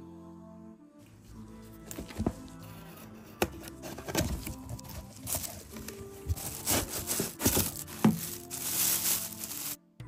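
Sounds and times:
plastic bag rustling: 0:04.0 - 0:09.8.

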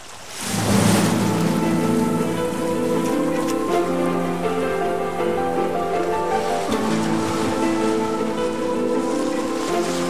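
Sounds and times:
rain-like hissing rush: 0:00.0 - 0:10.0
sustained synth chords: 0:00.4 - 0:10.0.

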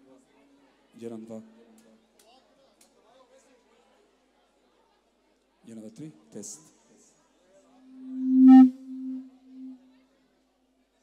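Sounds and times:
low feedback howl: 0:07.9 - 0:09.8.

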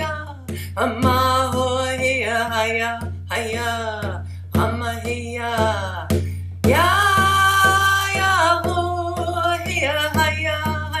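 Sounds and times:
frame drum beating: 0:00.0 - 0:11.0
woman singing: 0:00.0 - 0:11.0.

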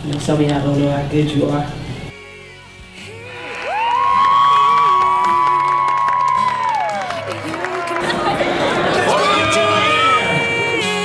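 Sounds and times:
voices screaming on high note: 0:03.0 - 0:08.2, 0:08.8 - 0:10.9
crowd cheering: 0:03.0 - 0:11.0
people shouting: 0:03.1 - 0:10.8
people clapping: 0:03.2 - 0:10.6.

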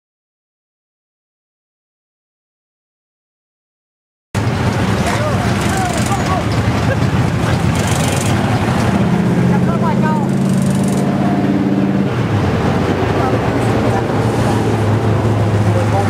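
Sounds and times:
race car engine rumbling: 0:04.4 - 0:16.0
people talking: 0:04.8 - 0:11.0, 0:12.9 - 0:14.7, 0:15.6 - 0:16.0.

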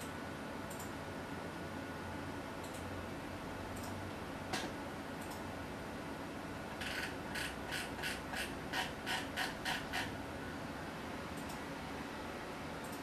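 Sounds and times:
computer mouse clicking: 0:00.7 - 0:01.0, 0:02.6 - 0:02.9, 0:03.8 - 0:04.0, 0:04.6 - 0:05.5, 0:06.8 - 0:10.2, 0:11.3 - 0:11.6.

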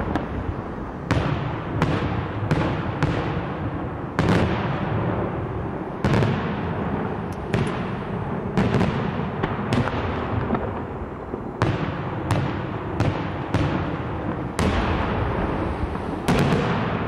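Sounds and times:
rolling rumble of echoes: 0:00.0 - 0:17.0.

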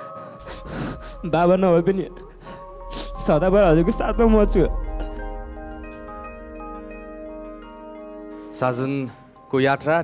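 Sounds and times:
man sobbing: 0:00.0 - 0:05.3
soft background music: 0:00.0 - 0:10.0.

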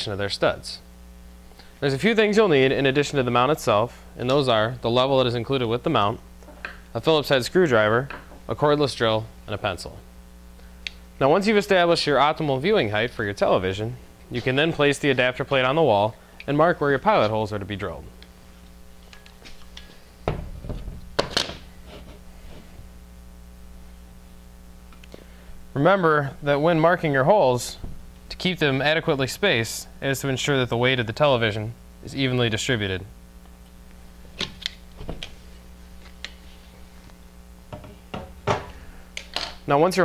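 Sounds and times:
faint steady hum: 0:00.0 - 0:40.0.

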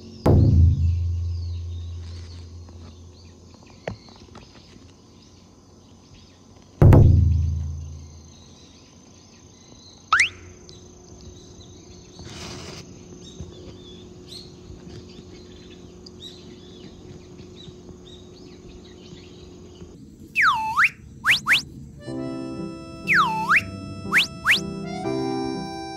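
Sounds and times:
birds chirping: 0:00.0 - 0:12.3, 0:13.1 - 0:25.9
insects: 0:00.0 - 0:25.9
heavy low cartoon thud: 0:00.3 - 0:03.1, 0:06.8 - 0:08.2
swooping cartoon whistles: 0:10.1 - 0:10.5, 0:20.3 - 0:21.7, 0:22.4 - 0:25.9
rising cartoon whistle: 0:10.2 - 0:10.5, 0:20.3 - 0:21.7, 0:22.3 - 0:25.9.

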